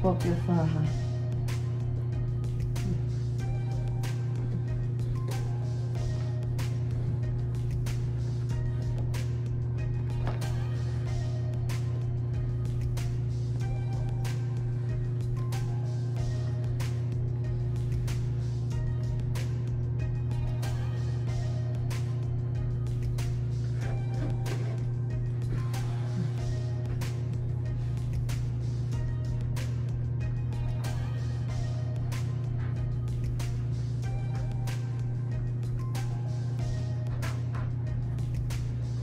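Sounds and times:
background music with steady beat: 0:00.0 - 0:39.0
low hum: 0:00.0 - 0:39.0.

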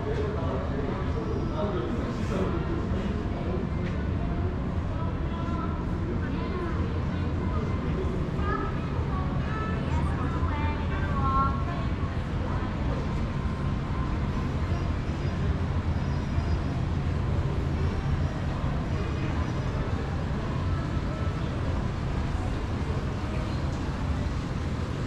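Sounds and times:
faint voices: 0:00.0 - 0:25.0.

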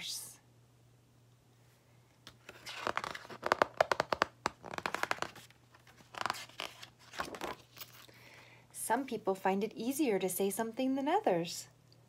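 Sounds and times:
book pages rustling: 0:02.3 - 0:08.1.

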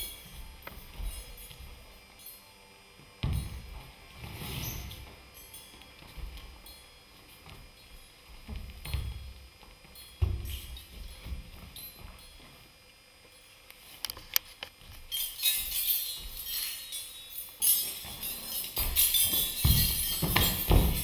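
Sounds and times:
hanging metal utensils tinkling: 0:15.1 - 0:21.0
metal frame knocks and thuds: 0:17.8 - 0:21.0.

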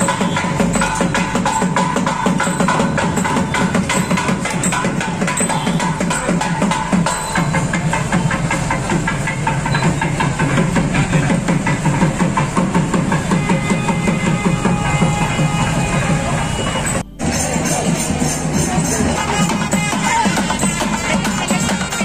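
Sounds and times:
motorcycle engines running: 0:01.7 - 0:19.2
loud music with a beat: 0:17.0 - 0:22.0.

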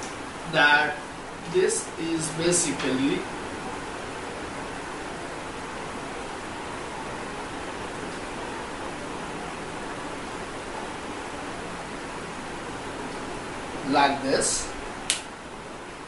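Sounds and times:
steady background hiss: 0:00.0 - 0:16.0.

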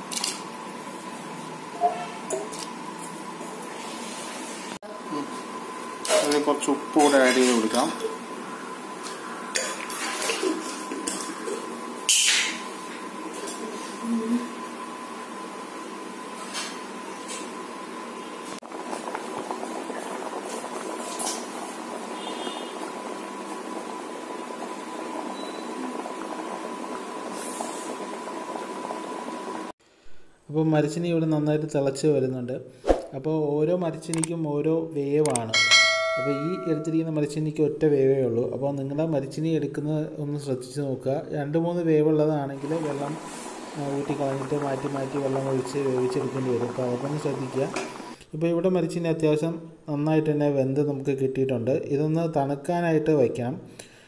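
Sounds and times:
water boiling and bubbling: 0:00.0 - 0:29.8, 0:42.4 - 0:48.2.

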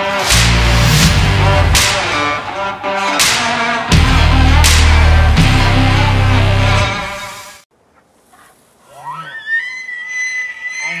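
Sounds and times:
music: 0:00.0 - 0:07.6
elk bugling: 0:07.9 - 0:11.0.

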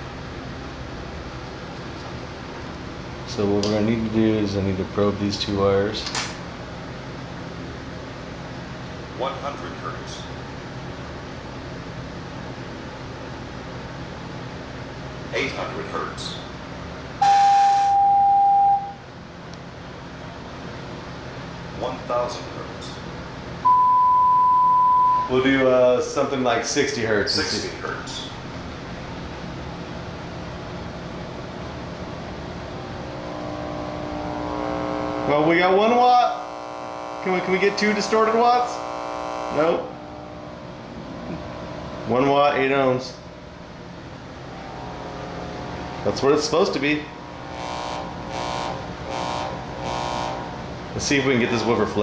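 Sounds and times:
faint room hum: 0:00.0 - 0:52.0
sine test tone: 0:17.2 - 0:19.0, 0:23.6 - 0:25.5, 0:32.9 - 0:35.5, 0:38.7 - 0:40.6, 0:44.4 - 0:50.6.

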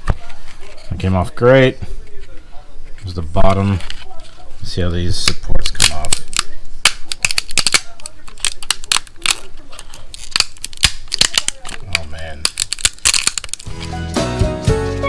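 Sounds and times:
plastic cracking and clicking: 0:05.2 - 0:13.9
background music with beat: 0:13.7 - 0:15.0.

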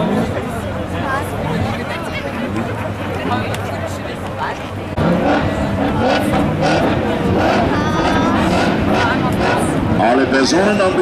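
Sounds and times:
car engines revving: 0:00.0 - 0:11.0
outdoor background noise: 0:00.0 - 0:11.0
voices talking: 0:00.0 - 0:11.0.

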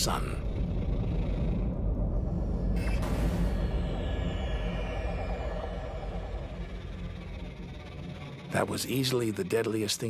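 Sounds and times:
deep rumbling drone: 0:00.0 - 0:10.0.

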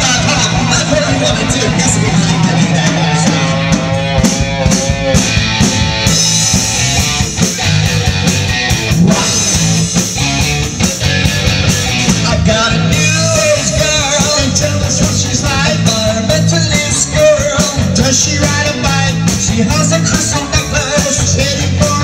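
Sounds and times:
live rock band playing: 0:00.0 - 0:22.0
man singing into microphone: 0:12.2 - 0:22.0.

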